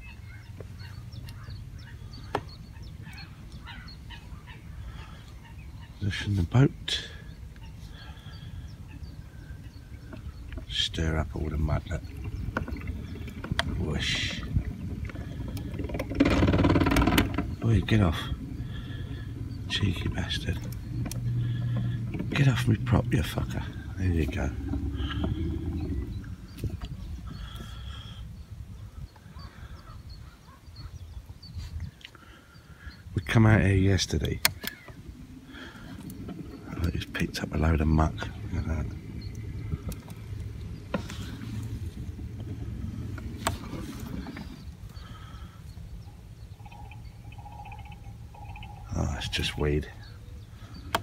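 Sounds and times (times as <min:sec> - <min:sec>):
waterfowl calls: 0:00.0 - 0:31.2, 0:32.1 - 0:51.0
outboard motor rumbling: 0:00.0 - 0:51.0.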